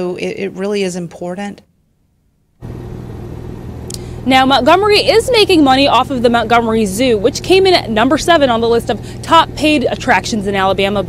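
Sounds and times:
faint hum: 0.0s - 11.0s
low outdoor rumble: 0.0s - 11.0s.

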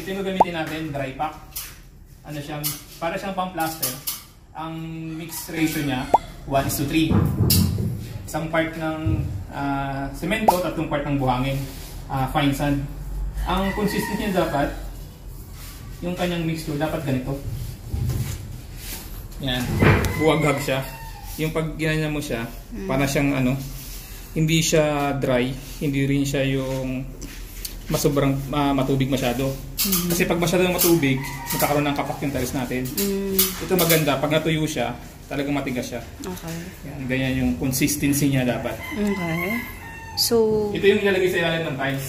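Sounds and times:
rooster crowing: 13.4s - 15.0s, 19.6s - 21.5s, 30.9s - 32.3s, 38.7s - 41.0s
man speaking: 21.5s - 23.7s
man talking: 21.5s - 23.7s.

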